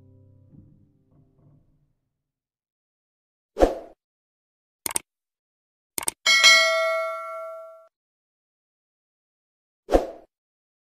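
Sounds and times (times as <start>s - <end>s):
quick double click: 4.8s - 5.0s, 6.0s - 6.2s
notification bell ding: 6.3s - 7.9s.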